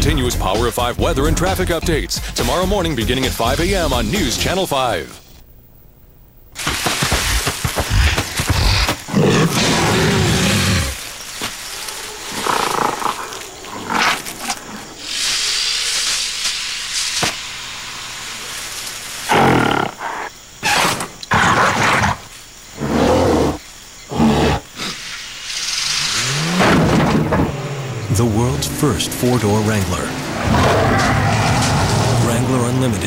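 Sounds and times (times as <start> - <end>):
jungle ambience: 0.0 - 33.0
gorillas roaring and grunting: 6.6 - 16.0, 19.3 - 25.1, 25.8 - 29.3, 30.0 - 32.8.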